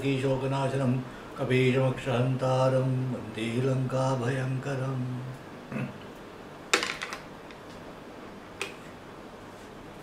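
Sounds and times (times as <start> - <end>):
quiet room hiss: 0.0 - 10.0.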